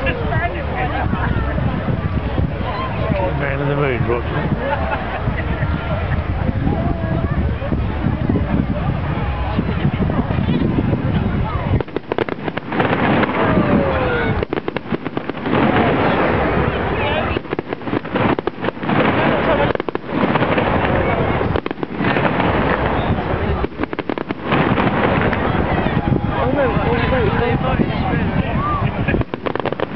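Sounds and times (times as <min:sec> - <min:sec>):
fireworks bursting and crackling: 0:10.0 - 0:27.7, 0:28.6 - 0:29.9.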